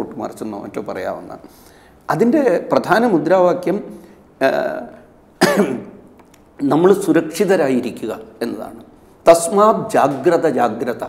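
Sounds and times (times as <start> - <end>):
speech: 0.0 - 1.4, 2.1 - 5.0, 6.6 - 11.0
man clearing his throat: 5.4 - 6.0.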